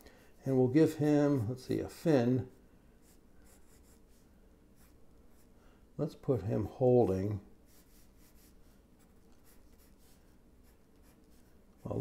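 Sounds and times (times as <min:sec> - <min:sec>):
pencil scratching on paper: 0:02.4 - 0:05.5, 0:07.6 - 0:12.0.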